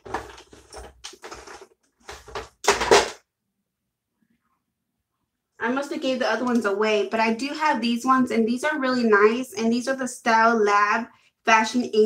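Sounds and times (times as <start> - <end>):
plastic tubes clattering: 0.0 - 3.2.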